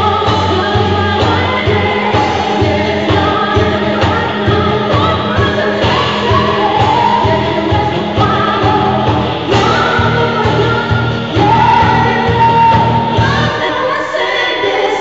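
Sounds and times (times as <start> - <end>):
live band playing: 0.0 - 13.6
backing vocals: 0.0 - 15.0
woman singing lead: 0.0 - 15.0.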